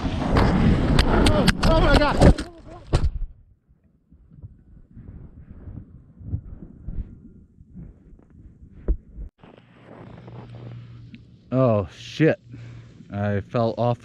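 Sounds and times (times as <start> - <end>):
muffled low thumps and rumbling: 4.1 - 11.5
steady low hum: 4.2 - 14.0.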